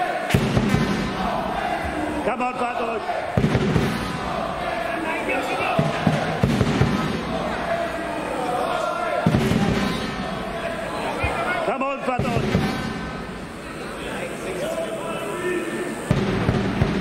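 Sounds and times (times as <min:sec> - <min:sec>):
voices calling out: 0:00.0 - 0:16.8
crowd noise in echoing hall: 0:00.0 - 0:17.0.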